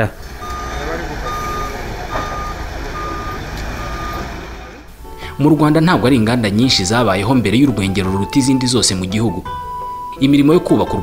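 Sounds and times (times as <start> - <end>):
forklift engine running: 0.0 - 5.1
forklift backup alarm beeping: 0.2 - 4.8.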